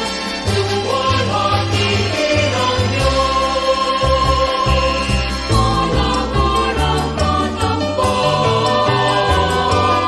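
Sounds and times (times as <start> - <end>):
choir singing: 0.0 - 10.0
bass line: 2.5 - 10.0.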